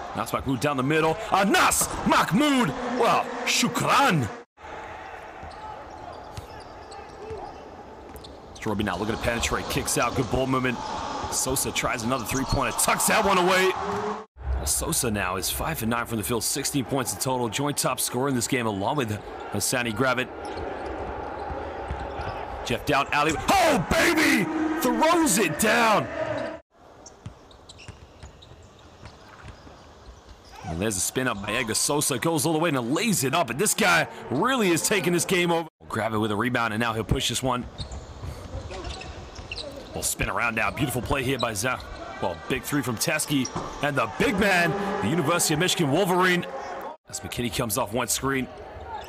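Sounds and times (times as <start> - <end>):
low arena hubbub: 0.0 - 26.6, 28.6 - 49.0
arena background noise: 16.0 - 35.6
loud voice: 23.2 - 26.5.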